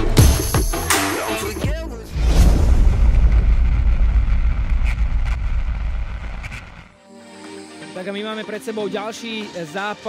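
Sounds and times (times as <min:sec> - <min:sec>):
deep cinematic boom and rumble: 0:02.1 - 0:07.0
faint crackles: 0:02.9 - 0:07.0.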